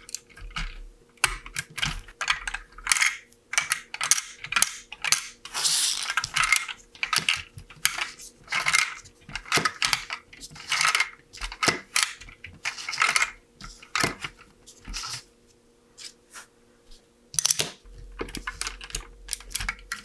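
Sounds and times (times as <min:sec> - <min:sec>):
plastic bricks clicking and clattering: 0:00.1 - 0:15.2, 0:17.4 - 0:20.0.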